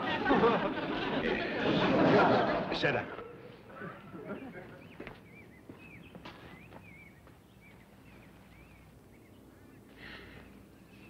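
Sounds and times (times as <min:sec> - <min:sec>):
low background hum: 0:00.0 - 0:11.0
faint bird chirping: 0:03.2 - 0:11.0.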